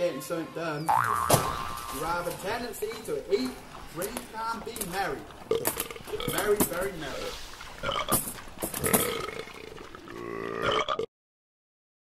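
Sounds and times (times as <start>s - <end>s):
person belching comically: 0.9s - 2.0s, 5.5s - 6.4s, 7.8s - 11.1s.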